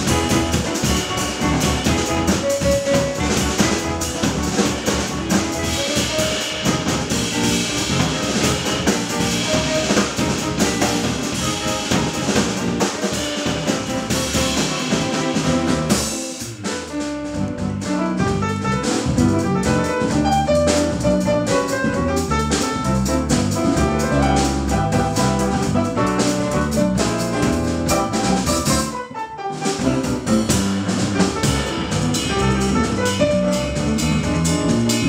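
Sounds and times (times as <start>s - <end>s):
bass guitar: 0.0s - 35.0s
drum kit and cymbals: 0.0s - 35.0s
piano: 0.0s - 35.0s.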